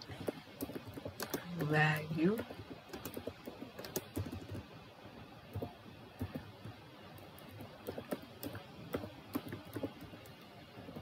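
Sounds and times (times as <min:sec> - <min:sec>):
computer keyboard typing: 0:00.0 - 0:04.8, 0:05.5 - 0:11.0.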